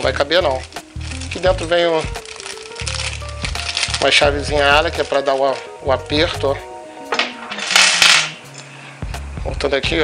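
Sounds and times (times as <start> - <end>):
metal parts clinking and scraping: 2.2 - 4.2, 7.3 - 8.4.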